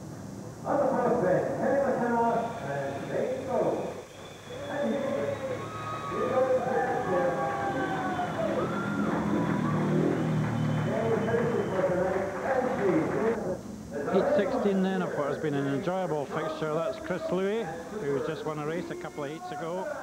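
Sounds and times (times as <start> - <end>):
indistinct voices: 0.6 - 20.0.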